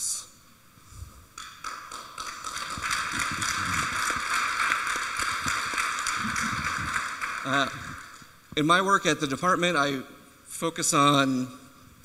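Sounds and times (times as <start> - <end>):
audience applauding: 1.4 - 8.4.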